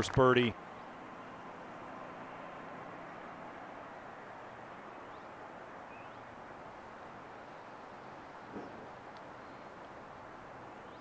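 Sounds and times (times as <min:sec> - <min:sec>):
open air hiss: 0:00.0 - 0:11.0
faint bird chirps: 0:04.9 - 0:06.3, 0:07.4 - 0:09.8, 0:10.7 - 0:11.0.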